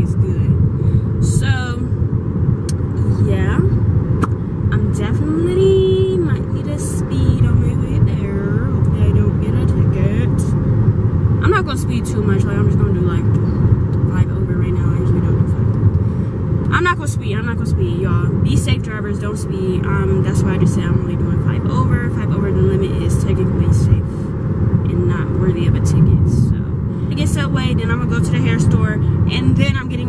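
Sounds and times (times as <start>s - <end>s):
car cabin road and engine rumble: 0.0s - 30.0s.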